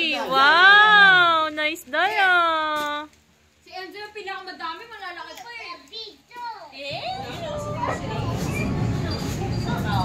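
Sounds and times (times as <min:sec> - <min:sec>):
children and adults talking: 0:00.0 - 0:10.0
low background noise: 0:00.0 - 0:10.0.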